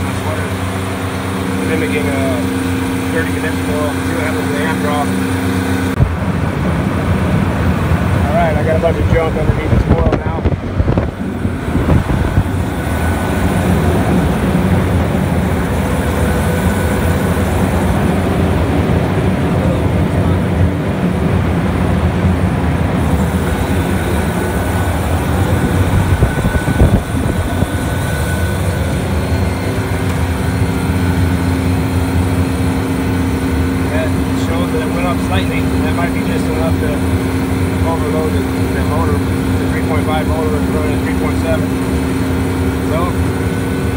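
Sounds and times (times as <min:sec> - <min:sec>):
condensing unit fan hum: 0:00.0 - 0:43.9.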